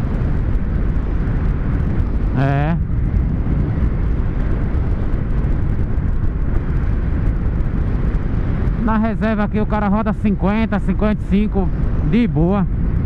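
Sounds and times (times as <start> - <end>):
wind rushing over microphone: 0.0 - 13.0.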